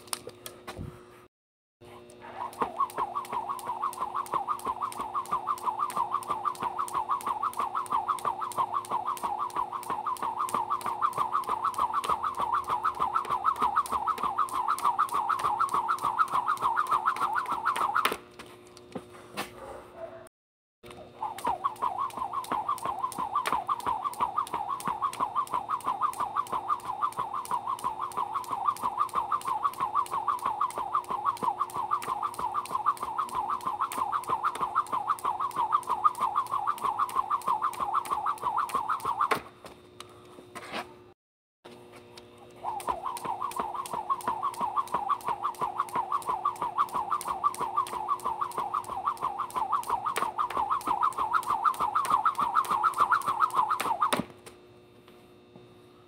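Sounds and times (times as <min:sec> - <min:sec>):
jump rope whirring and slapping: 0:02.4 - 0:19.6, 0:20.8 - 0:40.8, 0:42.6 - 0:54.6
faint steady hum: 0:41.7 - 0:56.0.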